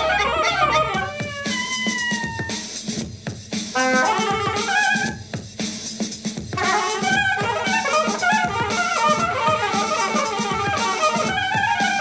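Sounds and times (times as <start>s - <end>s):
soprano saxophone wailing: 0.0s - 2.7s, 3.8s - 5.2s, 6.6s - 12.0s.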